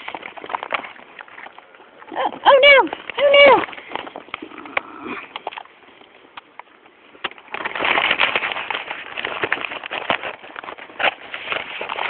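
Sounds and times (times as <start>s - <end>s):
cow chewing crunchily: 0.0s - 12.0s.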